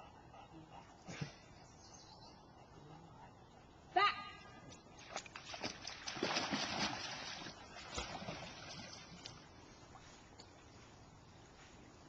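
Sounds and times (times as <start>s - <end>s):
dog splashing into water: 5.0s - 9.3s.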